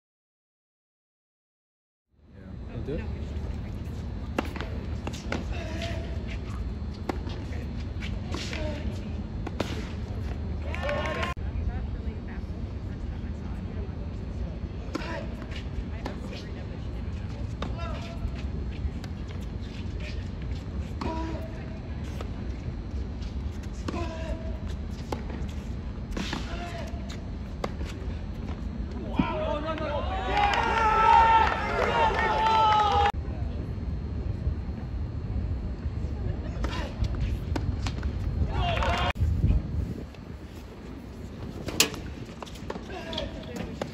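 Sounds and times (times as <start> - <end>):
steady low rumble: 2.3 - 29.6, 33.1 - 43.9
crowd cheering: 10.6 - 11.4, 29.7 - 33.1.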